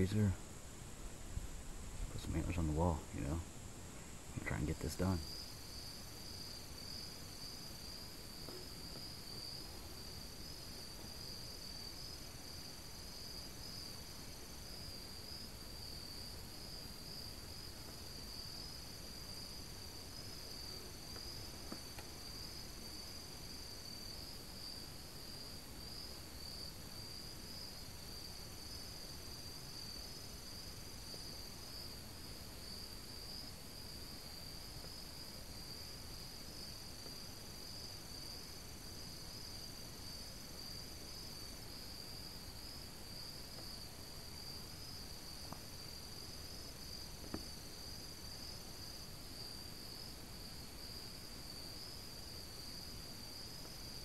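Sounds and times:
crickets trilling: 0:00.0 - 0:54.0
higher-pitched insect trills: 0:00.0 - 0:54.0.

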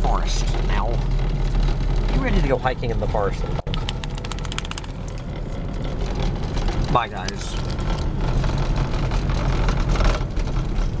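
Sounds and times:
low rumbling noise: 0:00.0 - 0:11.0.

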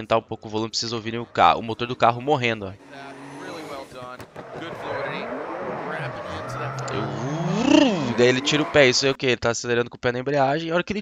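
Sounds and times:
car engine faltering and revving: 0:00.9 - 0:09.2.

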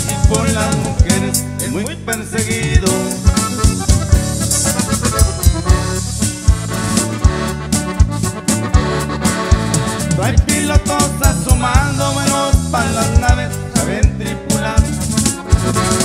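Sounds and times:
accordion-led band: 0:00.0 - 0:16.0.

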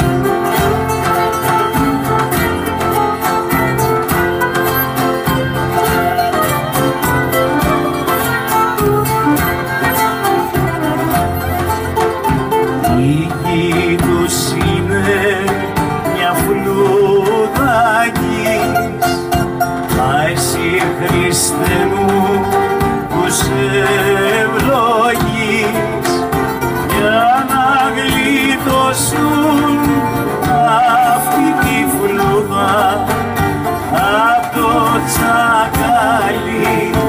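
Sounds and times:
acoustic guitar accompaniment: 0:00.0 - 0:37.0.

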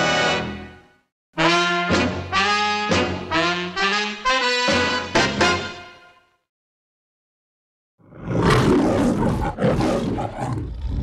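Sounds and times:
lion roaring: 0:08.0 - 0:11.0.

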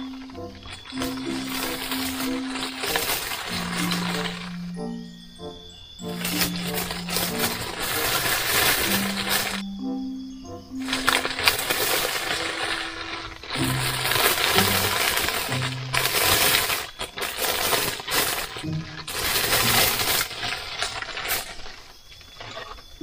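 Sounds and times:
plastic bag crinkling: 0:00.0 - 0:09.8, 0:10.8 - 0:23.0
soft background music: 0:00.0 - 0:16.8.

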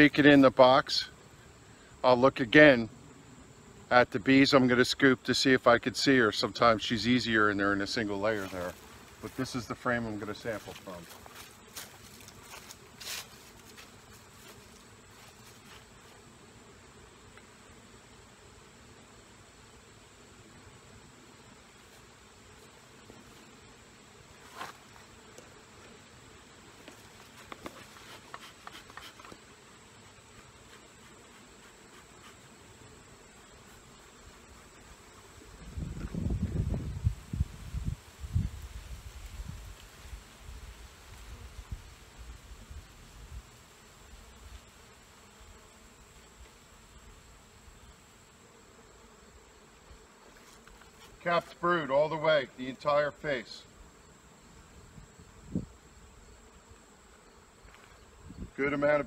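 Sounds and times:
bees buzzing: 0:02.9 - 0:59.0.

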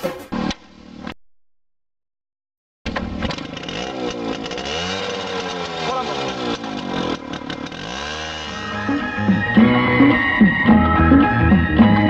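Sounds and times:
motorcycle engine revving: 0:02.9 - 0:12.0.

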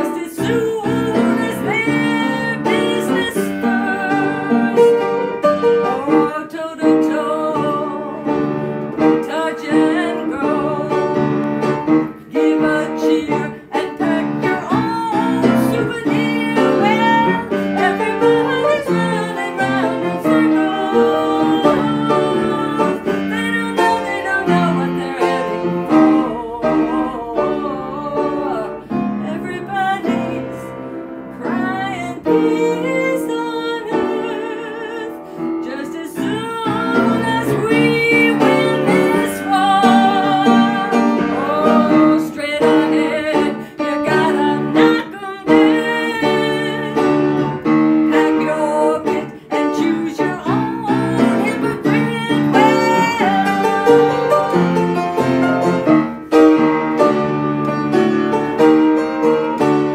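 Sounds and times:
upright piano playing: 0:00.0 - 0:59.9.

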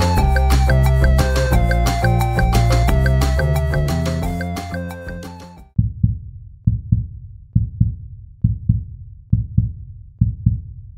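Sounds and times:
heartbeat thumps: 0:05.8 - 0:10.9.

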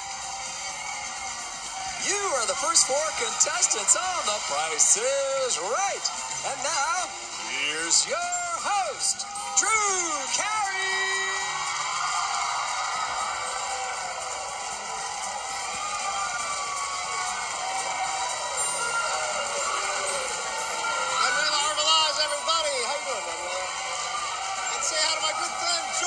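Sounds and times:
audience cheering and applauding: 0:00.0 - 0:26.0
game show entrance music: 0:00.0 - 0:26.0
whoops and yells: 0:08.1 - 0:26.0.

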